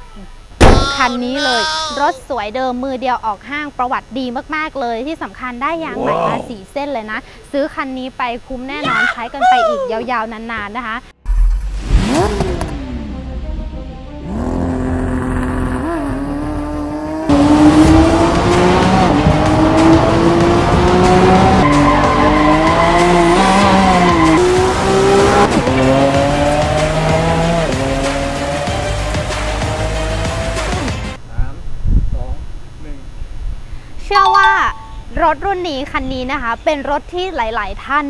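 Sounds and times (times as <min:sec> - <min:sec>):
low thump: 0:00.6 - 0:01.0
car engine accelerating: 0:11.3 - 0:30.9.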